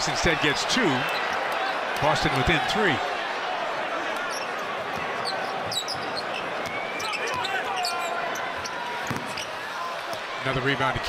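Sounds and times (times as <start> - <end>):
arena crowd noise: 0.0 - 11.0
sneakers squeaking on court: 4.2 - 9.6
basketball bouncing: 9.0 - 9.4.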